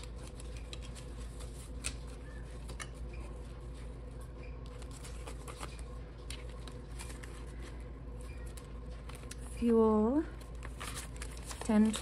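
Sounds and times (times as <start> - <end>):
banknotes rustling: 0.0 - 12.0
low background hum: 0.0 - 12.0.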